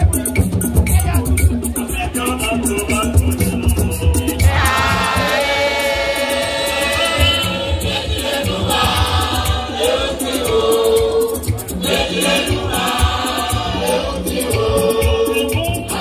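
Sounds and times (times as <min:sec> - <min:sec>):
group of voices singing: 0:02.2 - 0:16.0.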